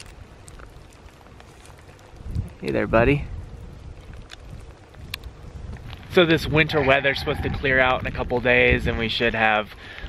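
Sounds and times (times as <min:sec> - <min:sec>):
wind buffeting microphone: 0:00.0 - 0:10.0
faint clicks: 0:04.0 - 0:06.1.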